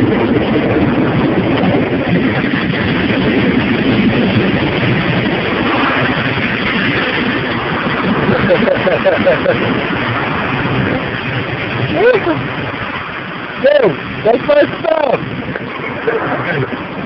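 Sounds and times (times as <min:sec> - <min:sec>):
water jets pelting car roof: 0:04.7 - 0:17.0.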